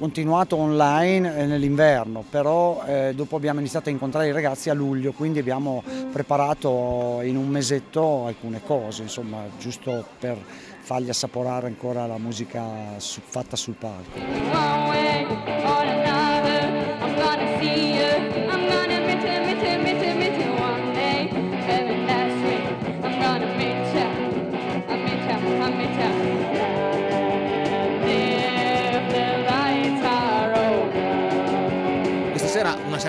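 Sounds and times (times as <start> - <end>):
instrumental accompaniment: 14.1 - 33.0
girl singing pop-rock song: 14.2 - 32.3.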